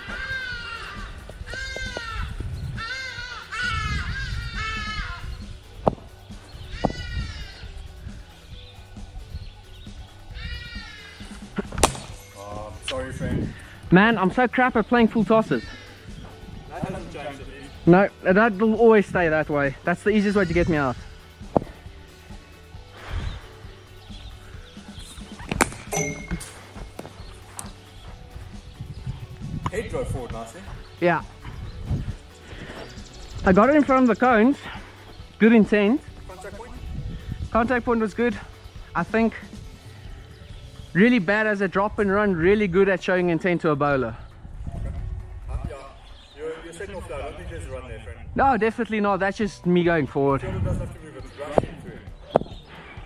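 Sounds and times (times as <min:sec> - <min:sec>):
quiet background music: 0:00.0 - 0:53.0
cricket bat striking ball: 0:25.5 - 0:26.3.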